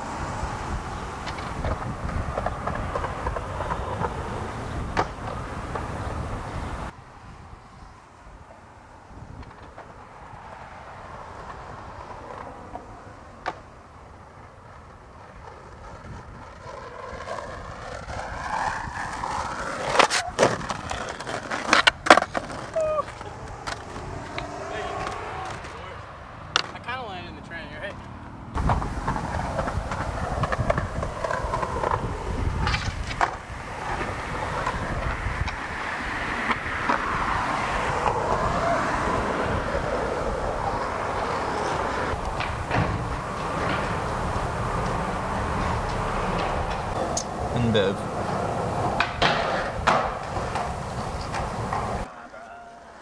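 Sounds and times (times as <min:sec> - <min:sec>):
skateboard wheels rolling: 0:00.0 - 0:53.0
skateboard clacking on ground: 0:00.6 - 0:07.0, 0:09.3 - 0:53.0.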